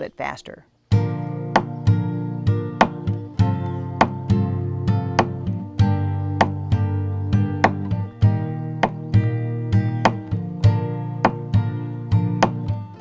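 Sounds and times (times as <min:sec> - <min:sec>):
nylon-string guitar strumming: 0:00.9 - 0:13.0
thumb slaps on guitar strings: 0:01.5 - 0:02.0, 0:02.7 - 0:12.8.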